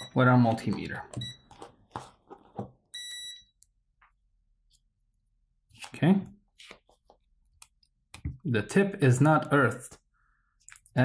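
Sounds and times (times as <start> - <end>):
multimeter beeps: 0.0 - 0.3, 1.1 - 1.6, 2.9 - 3.7.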